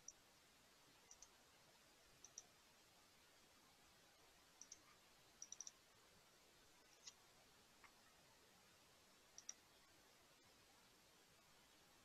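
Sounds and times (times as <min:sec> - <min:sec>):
faint computer mouse clicks: 0:01.1 - 0:01.4, 0:02.2 - 0:02.5, 0:04.6 - 0:05.8, 0:06.9 - 0:07.2, 0:09.4 - 0:09.6.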